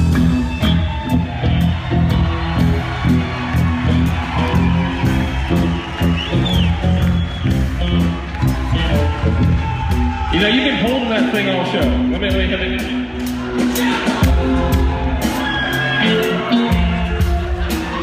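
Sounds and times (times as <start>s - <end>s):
bass guitar riff: 0.0s - 10.4s
drums: 0.0s - 18.0s
loud live rock band: 0.0s - 18.0s.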